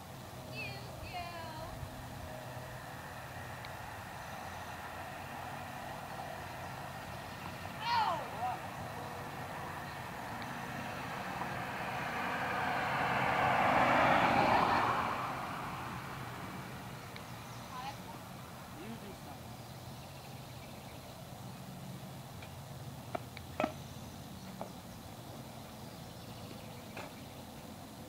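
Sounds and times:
vehicle passing by: 0:00.0 - 0:28.0
distant shout: 0:07.4 - 0:11.2.

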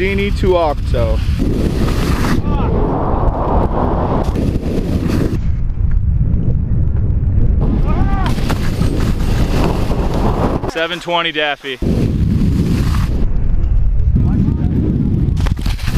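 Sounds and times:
wind buffeting microphone: 0:00.0 - 0:10.9, 0:11.8 - 0:15.9
skis scraping on snow: 0:00.1 - 0:02.4, 0:04.1 - 0:05.5, 0:08.3 - 0:13.2, 0:15.4 - 0:15.9
person shouting: 0:02.4 - 0:02.9, 0:07.8 - 0:08.4.

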